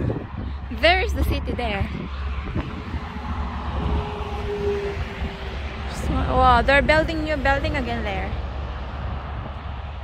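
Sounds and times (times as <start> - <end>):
highway traffic passing: 0.0 - 10.0
rumble of tyres and engines: 0.0 - 10.0.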